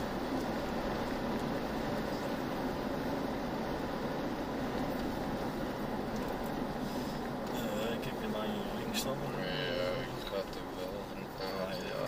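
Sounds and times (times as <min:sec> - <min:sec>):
vehicle engine and road noise: 0:00.0 - 0:12.0.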